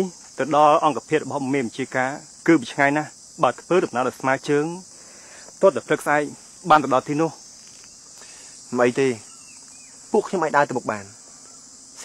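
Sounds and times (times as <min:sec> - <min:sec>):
high-pitched insect chorus: 0:00.0 - 0:12.0
man speaking: 0:05.6 - 0:07.4, 0:08.7 - 0:09.2, 0:10.2 - 0:11.2.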